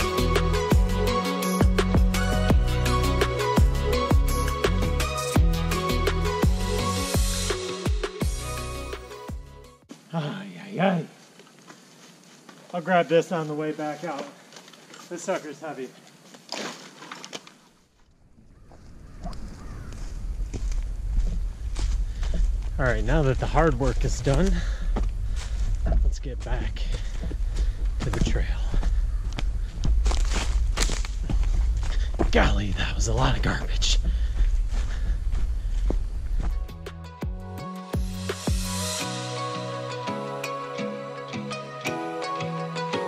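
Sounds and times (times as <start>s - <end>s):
footsteps on forest floor: 9.9s - 17.6s, 18.6s - 36.9s
footsteps in leaf litter: 27.6s - 32.5s.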